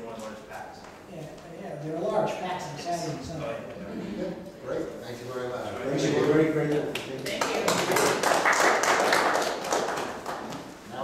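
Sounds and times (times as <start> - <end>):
audience applauding: 7.2 - 10.8.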